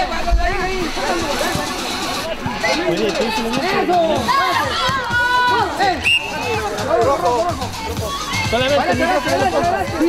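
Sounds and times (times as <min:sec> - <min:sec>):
voices calling out and talking: 0:00.0 - 0:10.0.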